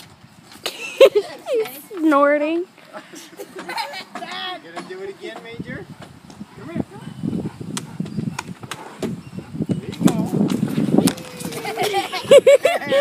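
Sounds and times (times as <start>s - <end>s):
dog snorting and huffing: 5.9s - 12.0s.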